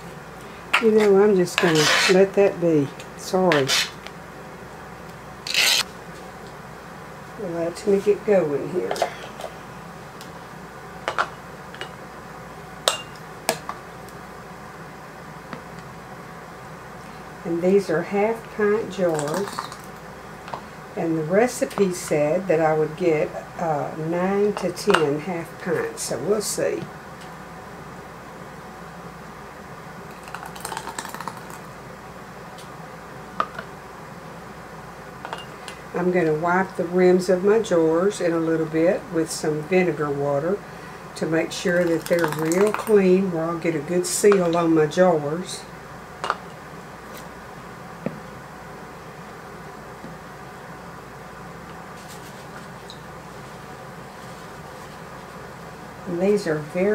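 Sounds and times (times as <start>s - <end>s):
low room hum: 0.0s - 56.9s
low steady hiss: 0.0s - 56.9s.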